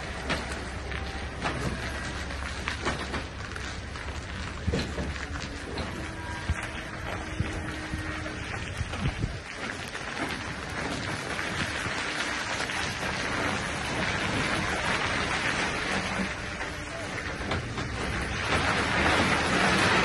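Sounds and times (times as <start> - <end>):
low truck engine rumble: 0.0 - 20.0
tyres hissing on gritty road: 0.0 - 20.0.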